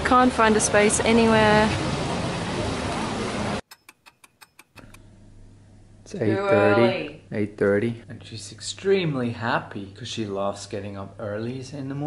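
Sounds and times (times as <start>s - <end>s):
fast metallic ticking: 3.7s - 5.0s
low steady hum: 4.8s - 12.0s.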